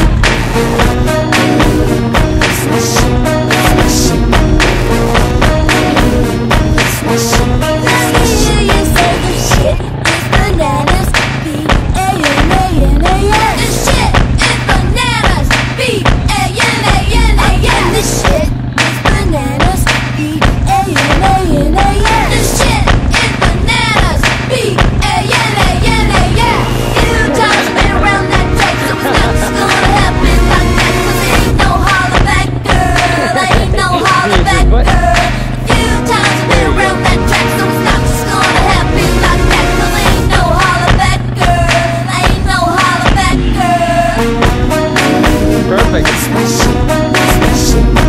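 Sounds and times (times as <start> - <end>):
song with steady drum beat: 0.0 - 48.0.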